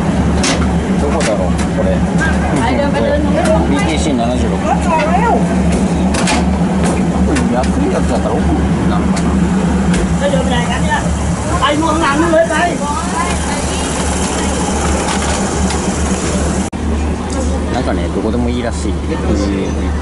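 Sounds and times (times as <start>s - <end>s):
passengers talking: 0.0s - 20.0s
train engine idling: 0.0s - 20.0s.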